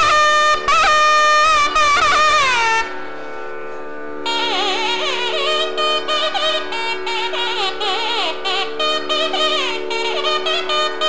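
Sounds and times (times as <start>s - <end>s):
reedy wind instrument note: 0.0s - 3.4s, 4.2s - 11.0s
steady drone: 0.0s - 11.0s.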